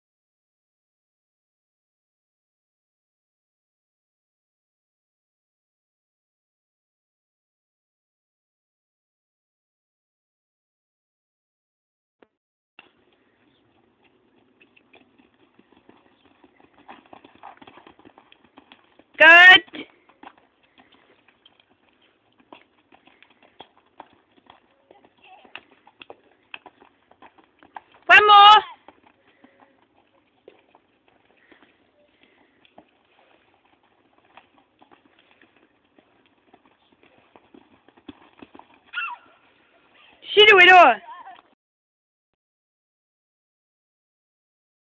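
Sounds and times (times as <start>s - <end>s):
horse hoofbeats on grass: 12.8s - 41.4s.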